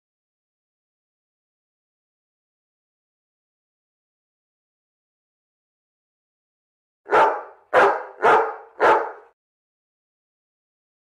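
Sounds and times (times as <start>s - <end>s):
dog barking: 7.1s - 9.4s.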